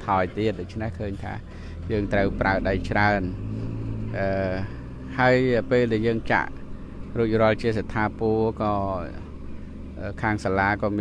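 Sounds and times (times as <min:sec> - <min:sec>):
man speaking: 0:00.0 - 0:03.4, 0:04.1 - 0:09.3, 0:10.0 - 0:11.0
wheel loader engine humming: 0:00.0 - 0:11.0.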